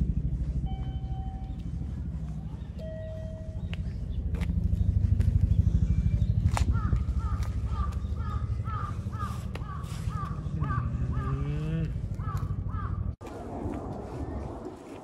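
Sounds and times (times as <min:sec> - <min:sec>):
low steady rumble: 0:00.0 - 0:15.0.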